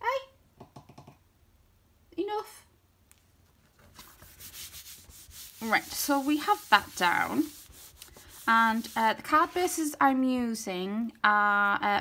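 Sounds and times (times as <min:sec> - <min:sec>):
hand rubbing card: 0:03.8 - 0:09.9.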